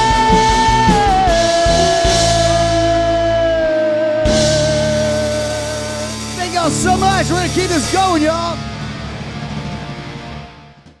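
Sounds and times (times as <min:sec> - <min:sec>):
electric guitar: 0:00.0 - 0:11.0
live rock band: 0:00.0 - 0:11.0.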